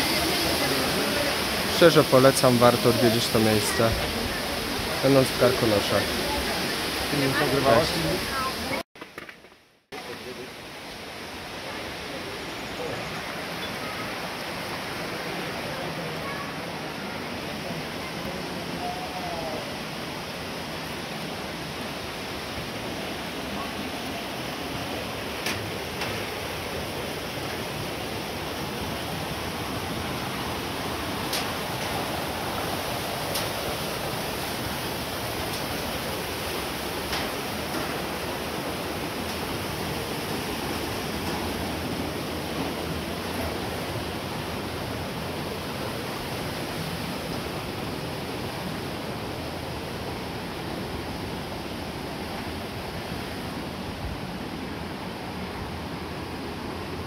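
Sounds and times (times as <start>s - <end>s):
mountain stream and waterfall rushing: 0.0s - 8.8s, 9.9s - 57.0s.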